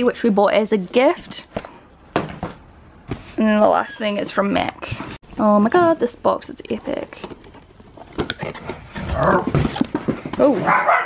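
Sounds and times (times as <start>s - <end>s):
dog barking loudly: 10.6s - 11.0s.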